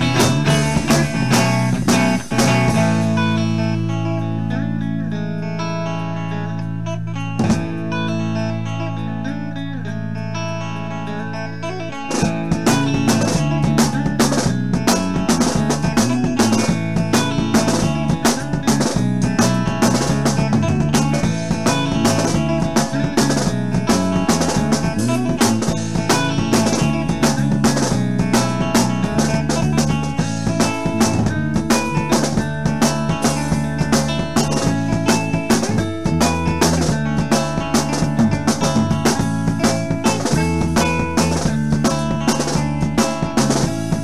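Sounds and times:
rapid drum hits: 0:00.0 - 0:03.4, 0:12.1 - 0:44.0
bass guitar: 0:00.0 - 0:44.0
electric guitar: 0:00.0 - 0:44.0.

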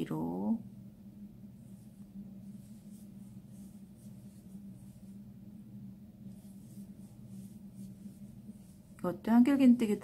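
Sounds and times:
low steady hum: 0:00.0 - 0:10.0
crochet hook rustling yarn: 0:01.5 - 0:05.3, 0:06.2 - 0:10.0.

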